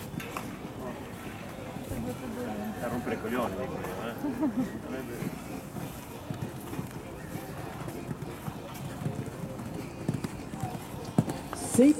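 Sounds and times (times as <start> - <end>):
horse hoofbeats on sand: 5.1 - 11.9.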